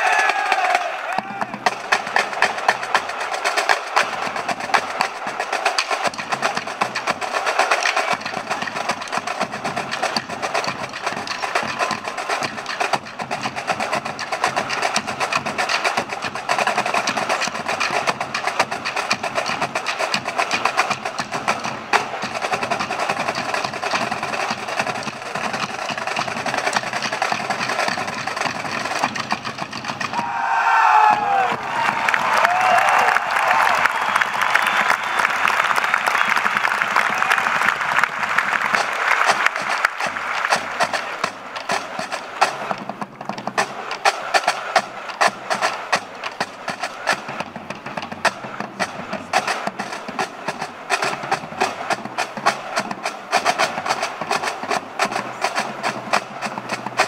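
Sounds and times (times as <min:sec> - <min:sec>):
crowd cheering and whooping: 0:00.0 - 0:01.7, 0:30.1 - 0:41.2
marching snare and bass drums: 0:00.0 - 0:57.0.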